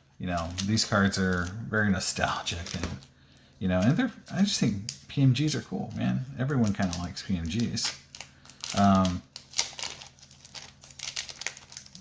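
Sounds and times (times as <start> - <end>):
plastic sleeves crinkling: 0.2 - 12.0.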